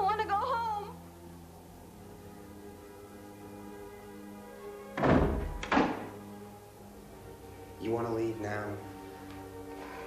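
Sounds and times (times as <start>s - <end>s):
background music: 0.0s - 10.0s
heavy thuds on wooden door: 5.0s - 6.1s.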